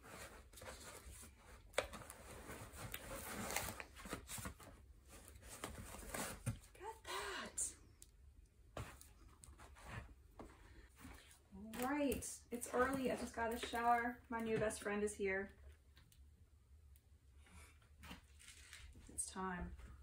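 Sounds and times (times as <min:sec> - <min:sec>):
paper rustling and crinkling: 0:00.0 - 0:06.7, 0:18.0 - 0:19.0.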